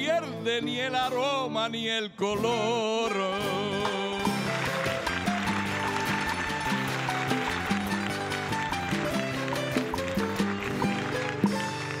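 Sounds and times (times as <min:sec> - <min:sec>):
low string and bass accompaniment: 0:03.6 - 0:12.0.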